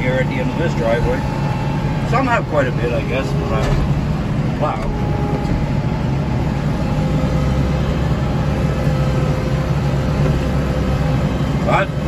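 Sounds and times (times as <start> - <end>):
snowblower whine: 0.0 - 12.0
tractor diesel engine drone: 0.0 - 12.0.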